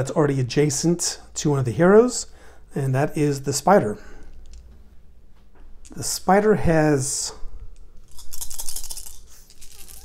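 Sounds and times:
plastic dice rattling in a hand: 8.1 - 10.0.

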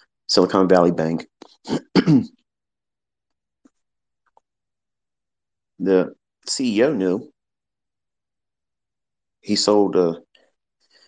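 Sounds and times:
man clearing throat: 1.7 - 2.4.

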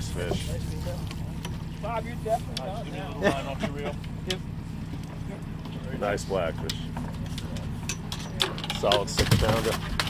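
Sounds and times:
boat engine humming: 0.0 - 10.0.

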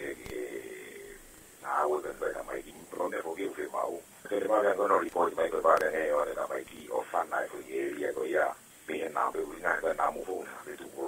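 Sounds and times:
man speaking over telephone: 0.0 - 11.0.

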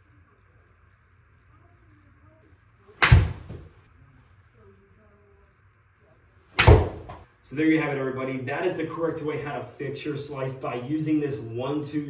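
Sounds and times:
golf club striking ball: 3.0 - 3.6, 6.6 - 7.2.

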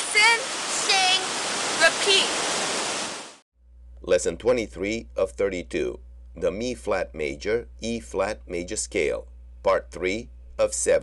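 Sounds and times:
girl speaking: 0.0 - 2.4
fountain spray rushing: 0.0 - 3.4.

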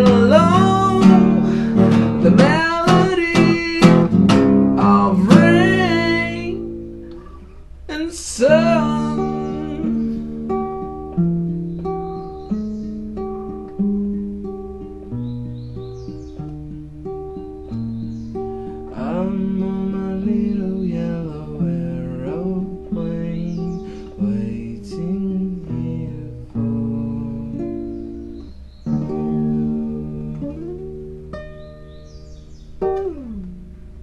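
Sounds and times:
person singing wordless notes: 0.0 - 4.1, 4.8 - 6.6, 7.9 - 10.2, 18.9 - 27.9
acoustic guitar ringing notes: 0.0 - 34.0.

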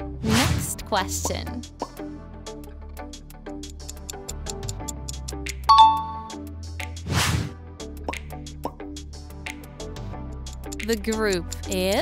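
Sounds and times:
quiz music with ticking beat: 0.9 - 7.0, 7.8 - 12.0
bright chime: 5.7 - 6.4.

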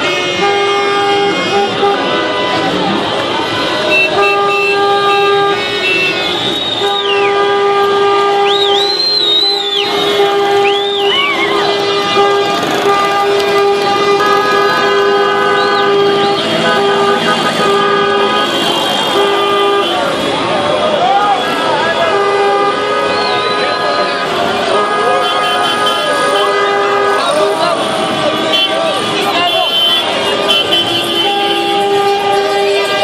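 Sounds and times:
car horns honking: 0.0 - 33.0
crowd shouting: 5.2 - 33.0
high whistles: 6.2 - 7.4, 8.4 - 11.5.

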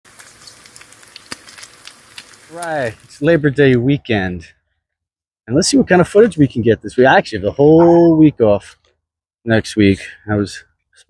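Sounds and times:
bacon sizzling in frying pan: 0.0 - 3.3
fat crackling and popping: 0.0 - 3.7.

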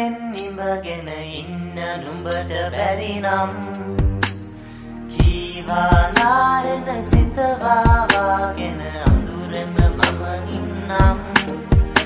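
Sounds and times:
person singing: 0.0 - 12.0
steady low bass: 3.5 - 12.0
drum strikes with low kick: 4.0 - 4.4, 5.2 - 6.4, 7.2 - 8.2, 9.1 - 10.1, 11.0 - 12.0.

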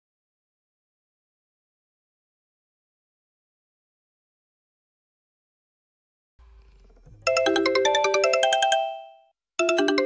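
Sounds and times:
mobile phone ringtone: 7.3 - 10.0.

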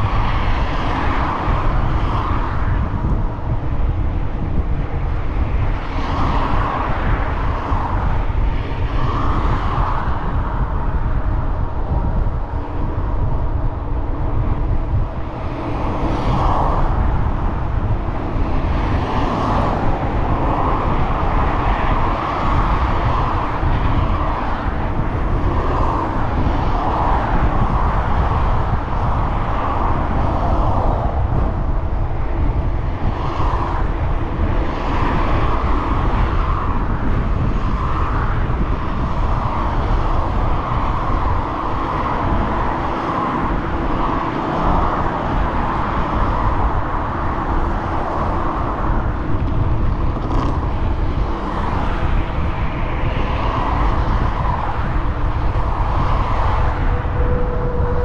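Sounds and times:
freeway traffic noise: 0.0 - 58.0
vehicles passing: 0.0 - 58.0
wind rumbling on microphone: 0.0 - 58.0.

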